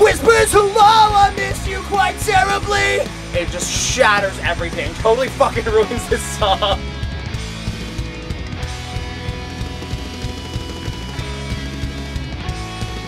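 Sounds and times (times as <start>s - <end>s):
drum kit beat: 0.0s - 13.0s
electric guitars: 0.0s - 13.0s.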